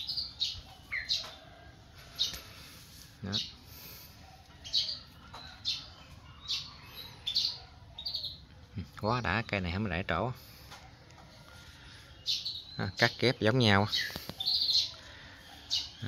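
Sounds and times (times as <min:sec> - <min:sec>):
small bird chirping: 0:00.0 - 0:10.8, 0:11.4 - 0:16.0.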